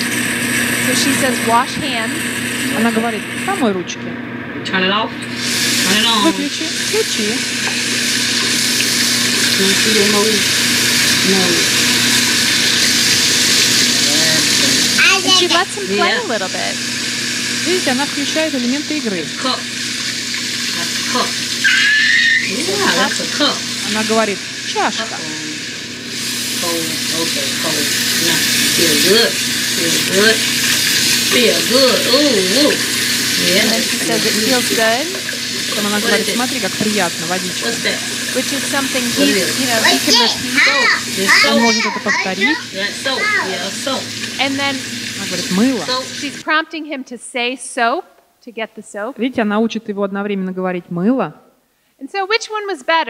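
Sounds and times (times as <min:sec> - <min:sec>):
tap water running into sink: 0:05.2 - 0:46.4.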